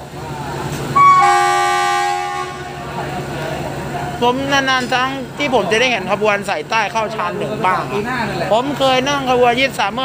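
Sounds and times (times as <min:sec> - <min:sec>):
locomotive horn blast: 0:00.9 - 0:03.2.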